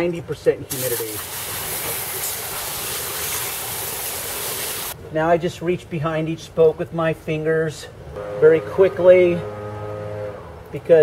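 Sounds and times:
hose spray hitting car wheel: 0.7 - 5.0.

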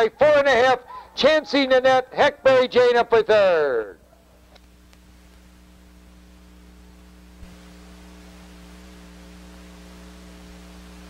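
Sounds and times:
electrical mains hum with hiss: 0.0 - 11.0
faint click: 4.5 - 5.5.

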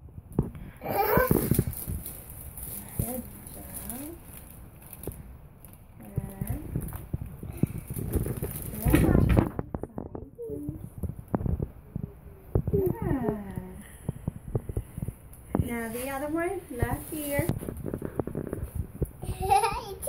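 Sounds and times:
soft voices: 6.0 - 11.0.

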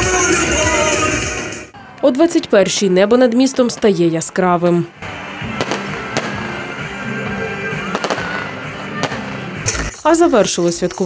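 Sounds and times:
background music: 0.0 - 11.0
fireworks bursting with sharp bangs: 5.0 - 7.0, 7.8 - 10.0.

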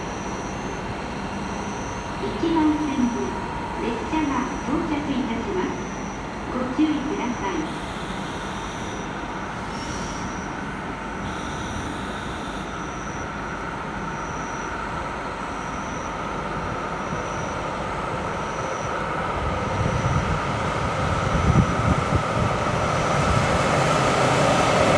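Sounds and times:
faint high beep: 0.0 - 0.8, 1.4 - 14.8, 15.5 - 16.3, 17.0 - 17.7, 18.3 - 19.0, 19.8 - 20.3
electric train running noise: 0.0 - 24.9.

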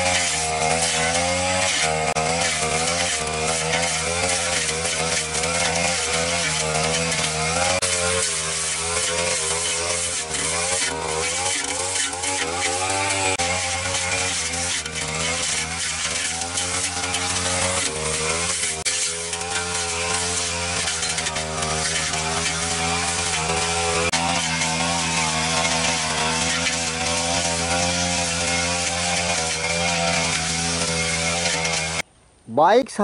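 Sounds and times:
brush cutter engine running: 0.0 - 32.1.

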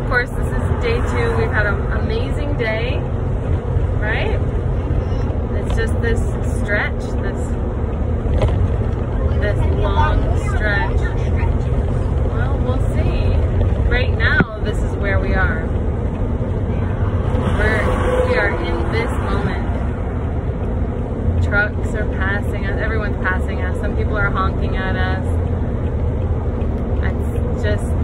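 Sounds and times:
people talking: 0.0 - 3.0, 4.0 - 4.4, 5.5 - 7.6, 9.1 - 15.8, 16.7 - 19.8, 21.4 - 25.3, 27.0 - 28.0
engine drone and road noise: 0.0 - 28.0.

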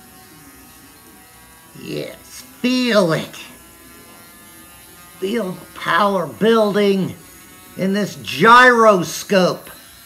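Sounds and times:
gyroscope rotor buzzing: 0.0 - 10.0.

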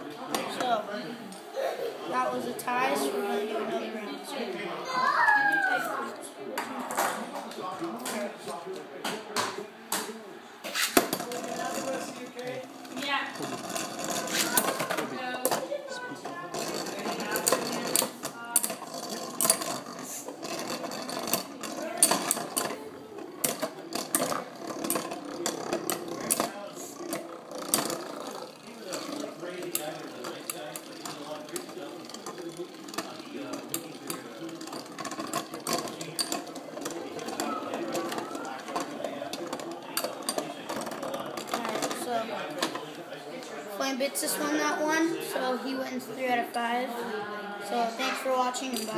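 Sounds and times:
spinning tops whirring and rattling: 10.6 - 45.4, 47.7 - 48.9.

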